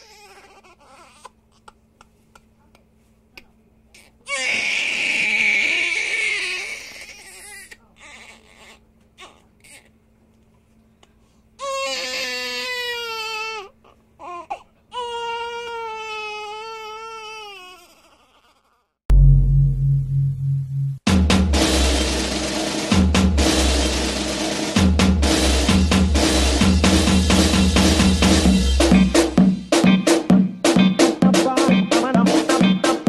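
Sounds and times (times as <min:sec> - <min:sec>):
infant crying: 0:00.0 - 0:01.8, 0:04.0 - 0:09.9, 0:11.6 - 0:19.0
drum-led music with heavy bass drum: 0:19.1 - 0:33.0.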